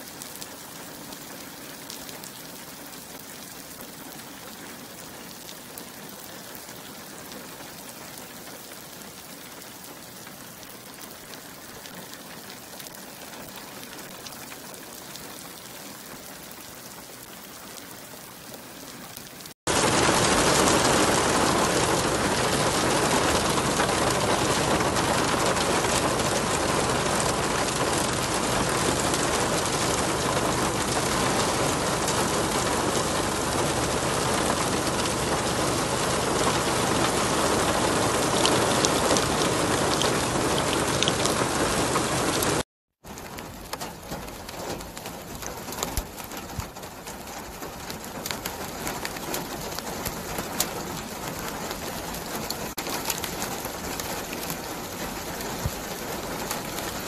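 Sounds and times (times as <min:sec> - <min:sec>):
rain falling on wet ground: 0:00.0 - 0:57.0.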